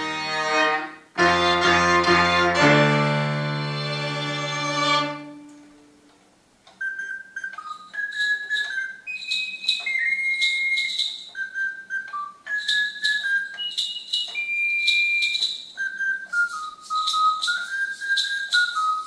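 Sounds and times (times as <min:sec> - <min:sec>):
high whistle-like melody: 0:06.8 - 0:19.0.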